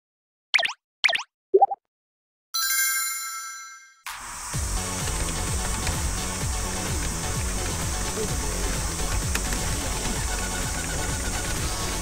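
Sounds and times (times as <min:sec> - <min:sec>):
cartoon pop sound effects: 0:00.6 - 0:01.8.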